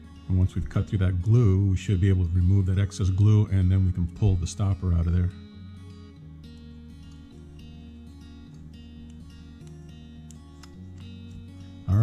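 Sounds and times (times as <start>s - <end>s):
plucked and strummed guitar: 0.0s - 12.0s.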